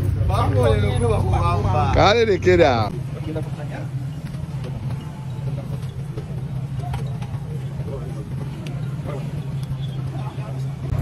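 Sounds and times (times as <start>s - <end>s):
faint voices: 0.0s - 11.0s
vehicle engine humming: 0.0s - 11.0s.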